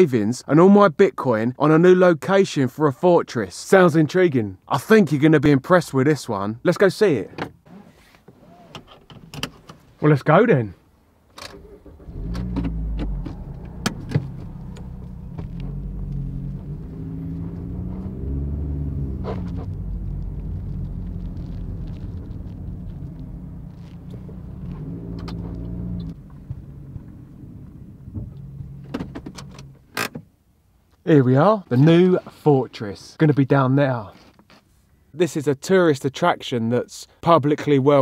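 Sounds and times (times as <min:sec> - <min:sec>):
car engine while driving: 0:11.4 - 0:30.0.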